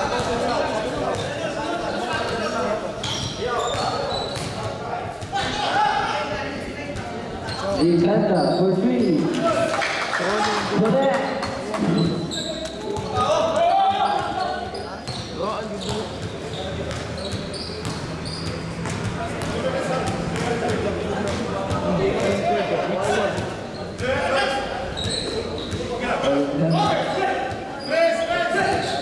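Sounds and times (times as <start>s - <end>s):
people shouting and talking: 0.0s - 29.0s
basketball bouncing on court: 3.0s - 5.4s, 15.0s - 24.2s.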